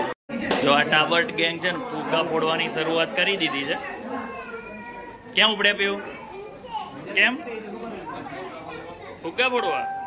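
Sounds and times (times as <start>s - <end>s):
children talking and calling out: 1.1s - 9.8s.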